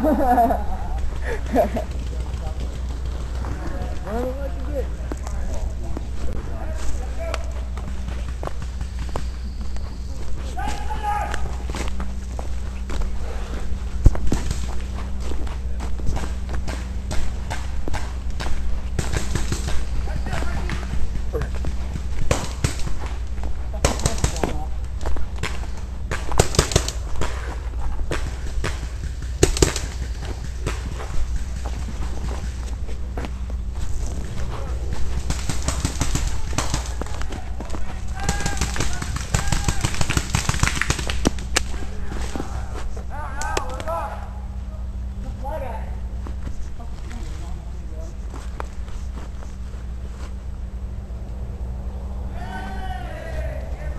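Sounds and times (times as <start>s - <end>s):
quick footsteps: 0.0s - 51.0s
steady low hum: 0.0s - 53.9s
short shouts: 10.5s - 11.6s, 52.3s - 53.9s
paintball markers firing: 16.1s - 24.7s, 25.4s - 32.7s, 34.9s - 42.5s.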